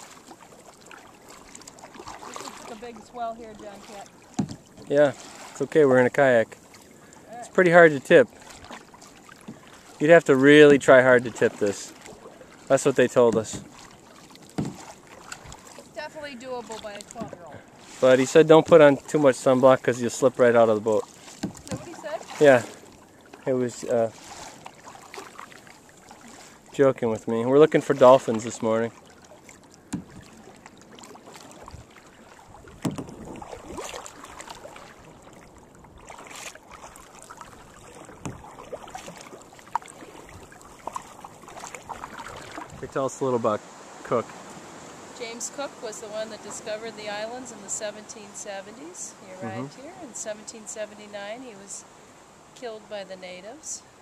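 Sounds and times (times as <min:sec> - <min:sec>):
kayak paddle strokes in water: 0:00.0 - 0:54.0.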